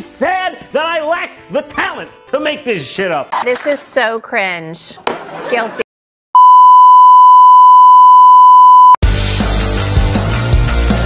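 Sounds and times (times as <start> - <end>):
steady test tone beep: 6.4 - 9.0.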